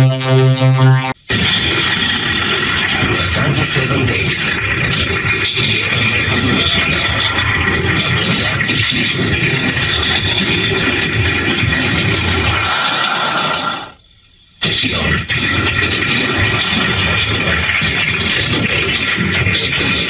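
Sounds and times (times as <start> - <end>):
distorted warped music: 0.0 - 12.7, 14.6 - 20.0.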